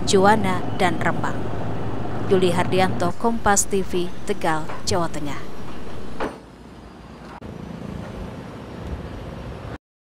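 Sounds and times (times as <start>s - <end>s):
low rumbling background noise: 0.0s - 9.8s.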